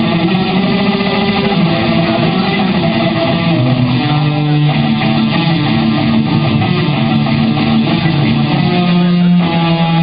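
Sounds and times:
guitar playing: 0:00.0 - 0:10.0.

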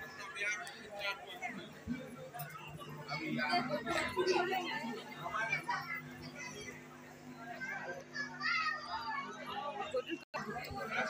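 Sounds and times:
children chattering and calling: 0:00.0 - 0:11.0.

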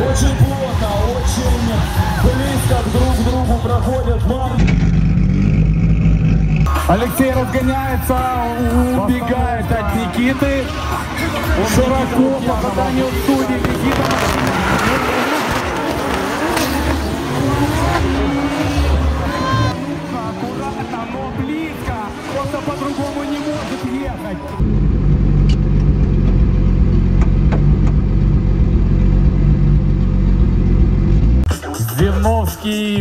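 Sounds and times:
car engines revving: 0:00.0 - 0:31.5
tyres squealing: 0:12.7 - 0:19.9.

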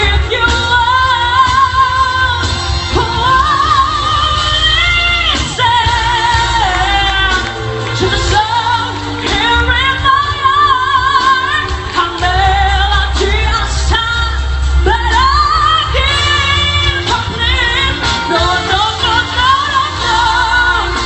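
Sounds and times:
backing music: 0:00.0 - 0:21.0
steady bass: 0:00.0 - 0:21.0
woman singing: 0:00.0 - 0:21.0.

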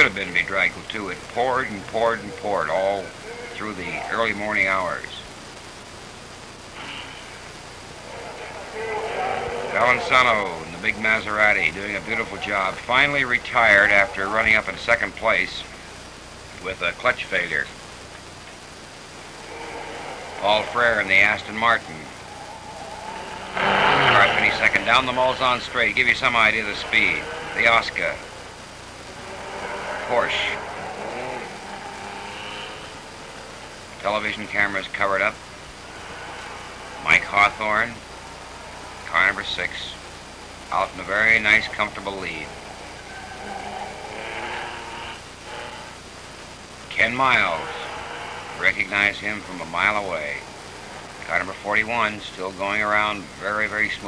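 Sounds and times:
faint low hum: 0:00.0 - 0:54.0
recording hiss: 0:00.0 - 0:54.0
racing car engine running: 0:18.7 - 0:53.8.

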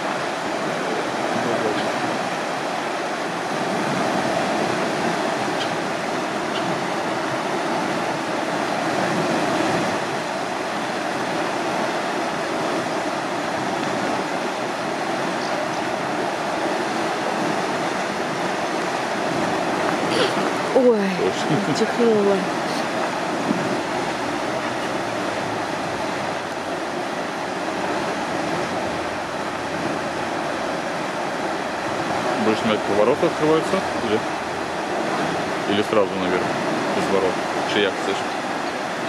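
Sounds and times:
water rushing through sluices: 0:00.0 - 0:39.0.

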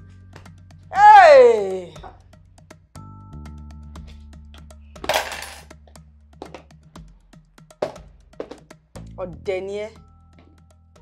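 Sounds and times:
background music with low drone: 0:00.0 - 0:11.0.

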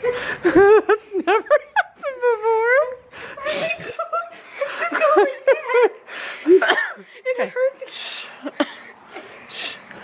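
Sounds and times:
girl laughing: 0:00.0 - 0:06.7.

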